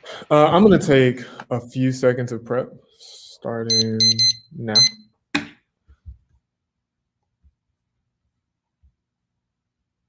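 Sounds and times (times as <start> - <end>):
electronic timer beeping: 3.7 - 5.1.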